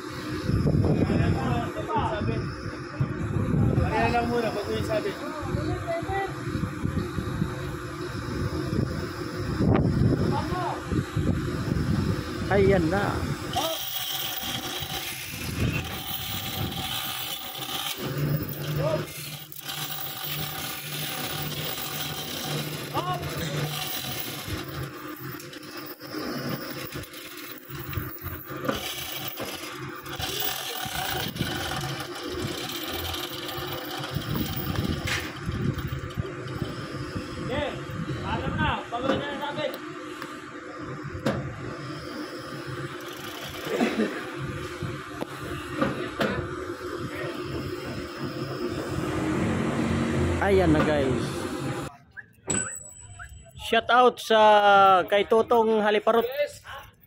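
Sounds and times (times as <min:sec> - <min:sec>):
crane hoist motor humming: 0:00.0 - 0:51.9.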